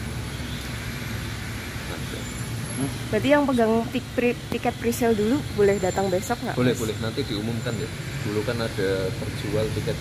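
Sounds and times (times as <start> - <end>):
outdoor background noise: 0.0 - 10.0
vehicle engine idling: 0.0 - 10.0.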